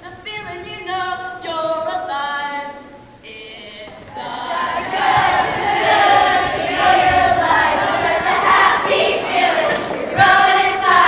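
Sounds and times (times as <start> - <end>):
young voices singing together: 0.0 - 11.0
crowd noise: 3.9 - 11.0.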